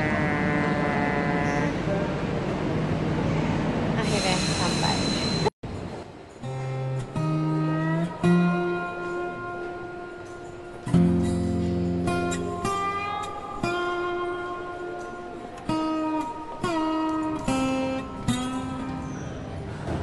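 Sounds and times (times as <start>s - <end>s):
train station noise: 0.0s - 20.0s
pitched tone: 4.0s - 5.5s
plucked acoustic guitar music: 6.4s - 19.5s.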